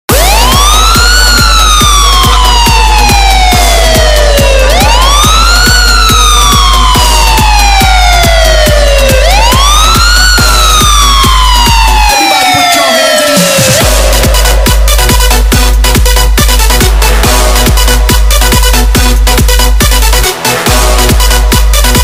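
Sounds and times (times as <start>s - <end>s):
fast kick drum: 0.1s - 12.1s, 13.5s - 22.0s
deep bass: 0.1s - 12.4s, 13.4s - 22.0s
siren-like synth sweep: 0.1s - 18.6s.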